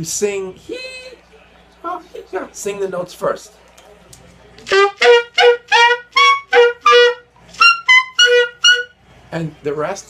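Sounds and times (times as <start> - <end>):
saxophone overtone notes: 4.7 - 9.0.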